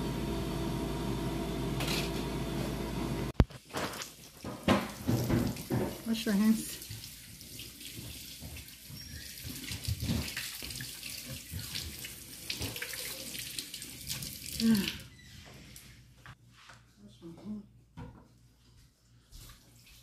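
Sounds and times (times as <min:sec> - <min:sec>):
tap water running into sink: 0:04.4 - 0:15.0.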